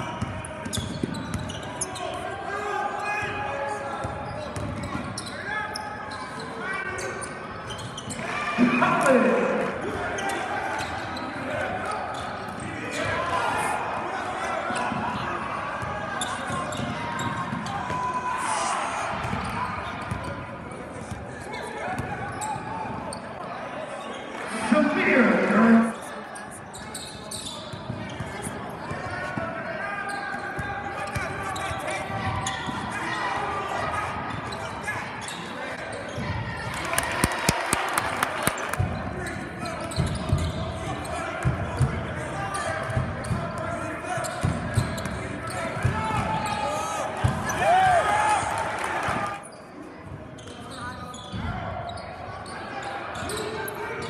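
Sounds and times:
crowd and player chatter: 0.0s - 54.0s
sneaker squeak: 0.2s - 2.2s, 4.0s - 9.1s, 10.0s - 13.1s, 16.2s - 18.0s, 19.3s - 20.4s, 22.0s - 23.4s, 26.0s - 29.3s, 30.0s - 32.9s, 34.3s - 36.4s, 38.5s - 41.2s, 44.2s - 46.6s, 49.4s - 54.0s
sharp clapping: 36.7s - 38.9s.

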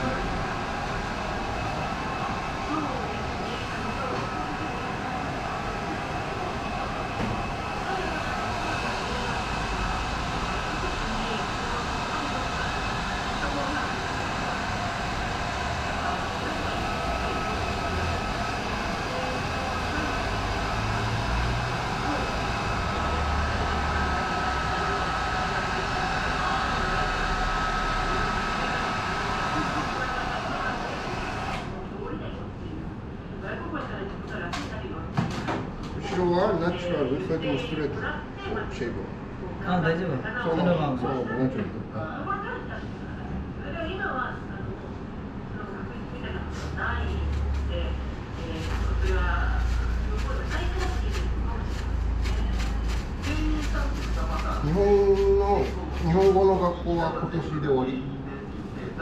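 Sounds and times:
hair dryer blowing: 0.0s - 31.8s, 46.6s - 57.1s.

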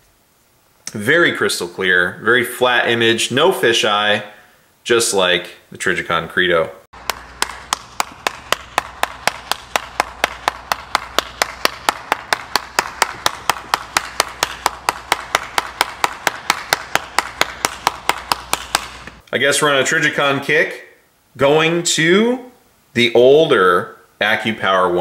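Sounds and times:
steady low hum: 0.0s - 20.2s
person clapping hands: 7.0s - 19.2s.

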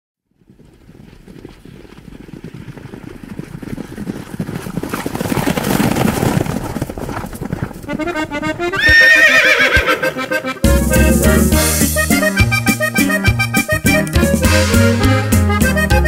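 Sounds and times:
galloping horse hooves: 0.2s - 16.0s.

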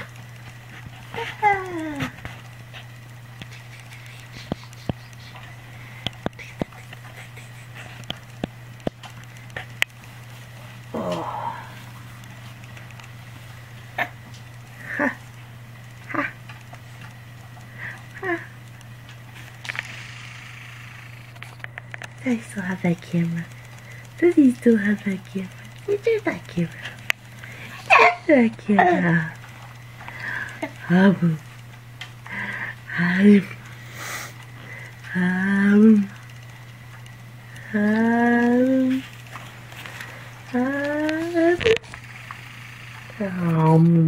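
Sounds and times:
soft clicks and rustles: 0.0s - 10.9s, 11.7s - 20.0s, 21.3s - 28.6s, 38.3s - 44.0s
steady low hum: 0.0s - 44.0s.

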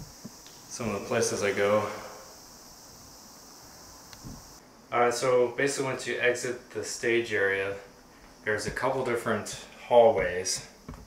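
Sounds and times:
steady high hiss: 0.0s - 11.0s
soft low thump: 4.2s - 4.4s.

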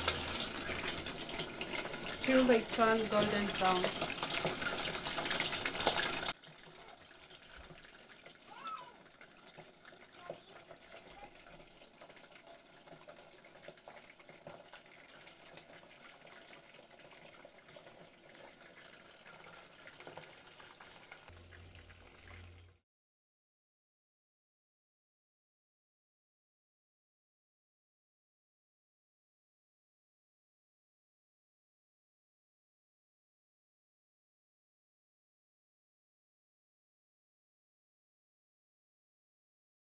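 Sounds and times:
deep-frying sizzle in oil: 0.0s - 22.8s.

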